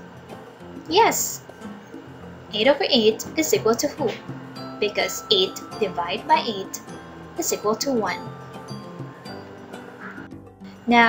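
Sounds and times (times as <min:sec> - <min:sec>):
background music with held notes: 0:00.0 - 0:11.0
person narrating: 0:00.9 - 0:01.4, 0:02.5 - 0:04.2, 0:04.8 - 0:06.8, 0:07.4 - 0:08.3
woman speaking: 0:00.9 - 0:01.4, 0:02.5 - 0:04.2, 0:04.8 - 0:06.8, 0:07.4 - 0:08.3.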